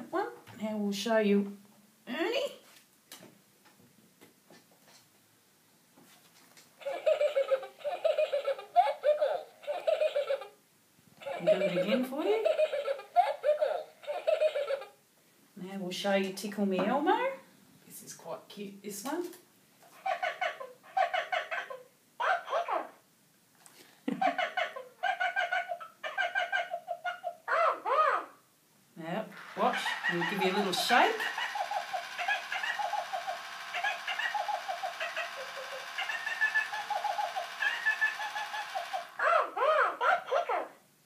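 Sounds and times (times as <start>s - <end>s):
toy giggling through speaker: 6.8s - 10.6s, 11.2s - 15.0s, 20.0s - 22.9s, 24.2s - 28.3s, 29.4s - 40.7s
swooping toy voice: 29.4s - 40.7s.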